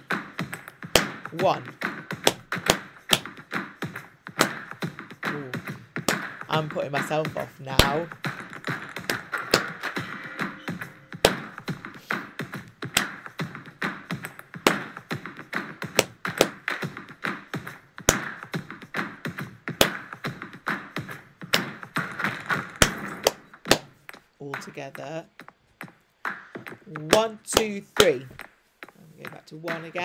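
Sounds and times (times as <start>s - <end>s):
music: 0.0s - 30.0s
rhythmic hand claps: 0.0s - 30.0s
tapped percussion: 0.0s - 30.0s.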